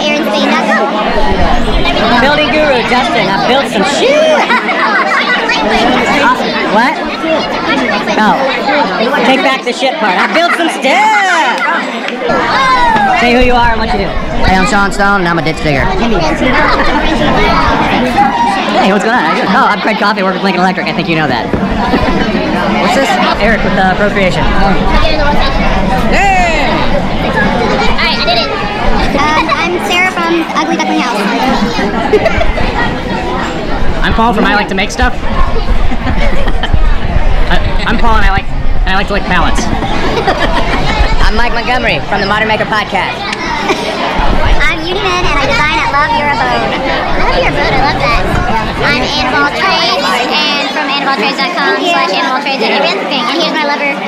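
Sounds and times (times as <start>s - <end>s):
crowd chatter: 0.0s - 54.0s.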